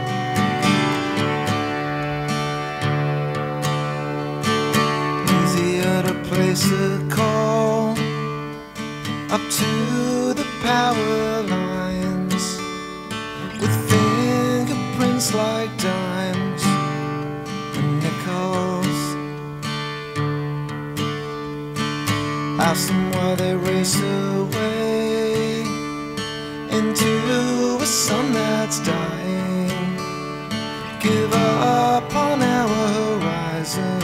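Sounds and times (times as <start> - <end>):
sliding lead melody line: 0.0 - 18.2
acoustic guitar strumming: 0.0 - 34.0.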